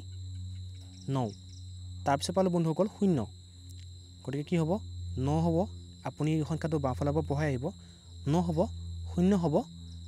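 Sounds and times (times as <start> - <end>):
high-pitched whine: 0.0 - 10.0
low hum: 0.0 - 10.0
man speaking: 1.1 - 1.4, 2.0 - 3.3, 4.2 - 9.7.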